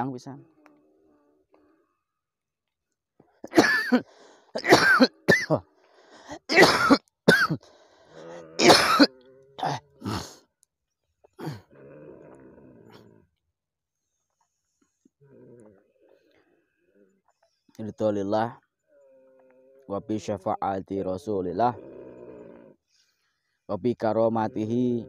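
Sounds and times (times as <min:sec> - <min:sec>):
person coughing hard: 0:03.5 - 0:05.6, 0:06.4 - 0:07.6, 0:08.2 - 0:10.4
low voiced groan: 0:08.1 - 0:10.4, 0:24.0 - 0:25.0.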